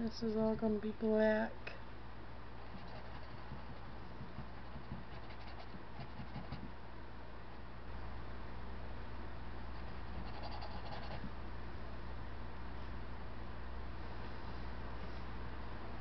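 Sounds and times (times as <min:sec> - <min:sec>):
paintbrush scratching on canvas: 0:02.7 - 0:06.7, 0:09.8 - 0:11.3.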